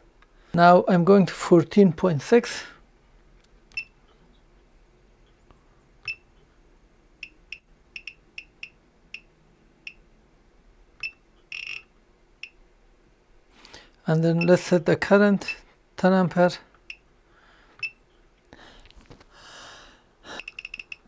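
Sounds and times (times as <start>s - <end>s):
electronic key-press beeps: 3.7s - 4.0s, 6.0s - 6.2s, 7.2s - 9.3s, 11.0s - 11.8s.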